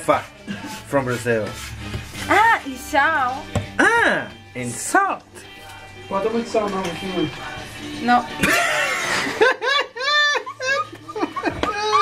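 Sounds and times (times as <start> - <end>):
people laughing: 8.4 - 12.0.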